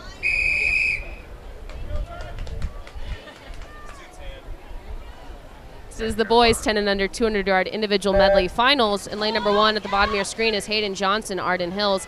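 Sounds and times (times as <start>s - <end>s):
whistle blast: 0.2s - 1.2s, 8.1s - 8.5s
people talking: 1.6s - 12.0s.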